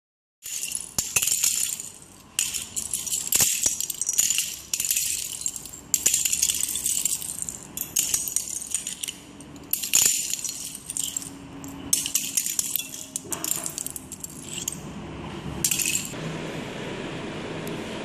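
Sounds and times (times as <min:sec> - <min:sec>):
plastic bricks clattering: 0:00.4 - 0:14.8.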